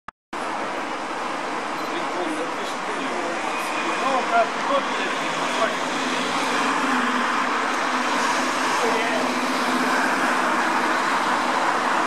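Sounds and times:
distant road traffic hiss: 0.4s - 12.0s.

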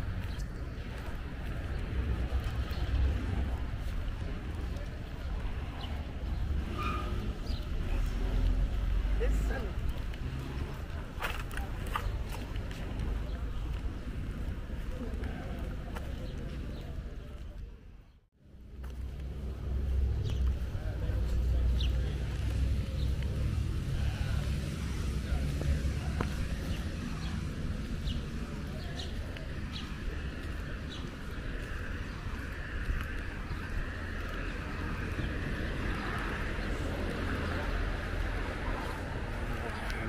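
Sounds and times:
low street rumble: 0.0s - 40.0s.

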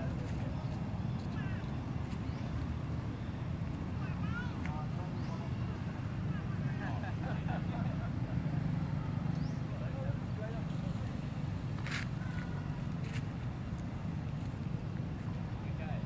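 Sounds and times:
distant voices: 0.0s - 16.0s.

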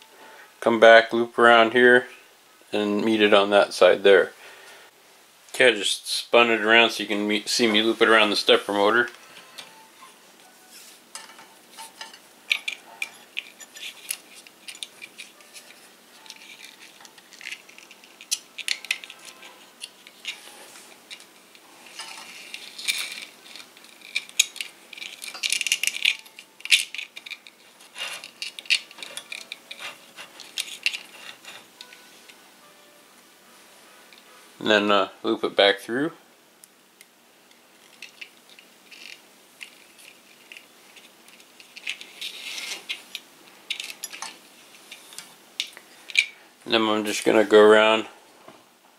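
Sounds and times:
rubber belt clicks and rustles: 11.1s - 32.0s, 37.0s - 46.4s.

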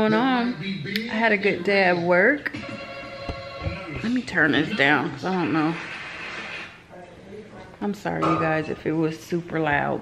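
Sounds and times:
woman speaking: 0.0s - 2.5s, 3.9s - 5.9s, 7.8s - 10.0s
faint voices from television: 0.0s - 10.0s
television hiss: 0.0s - 10.0s.

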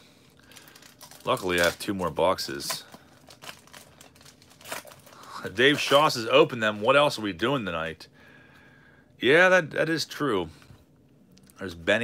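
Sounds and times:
wrapper crinkling being torn: 0.4s - 6.9s.

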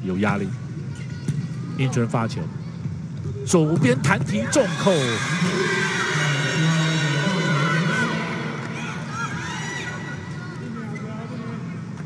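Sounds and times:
crowd cheering and shouting: 4.3s - 11.0s.

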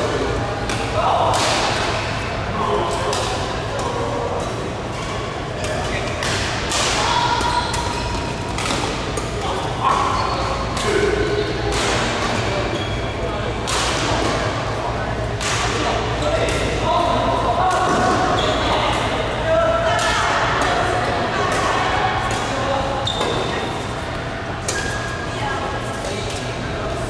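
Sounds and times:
badminton rackets hitting shuttlecock: 5.6s - 12.3s.

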